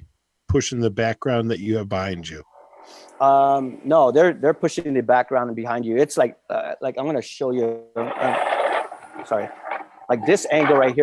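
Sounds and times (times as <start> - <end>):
person speaking: 0.0 - 2.4, 3.0 - 11.0.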